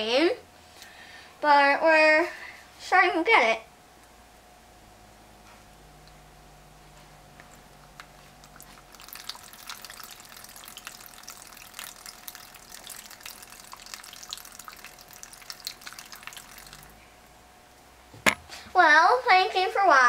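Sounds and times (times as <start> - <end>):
water droplets splashing: 7.9 - 17.0.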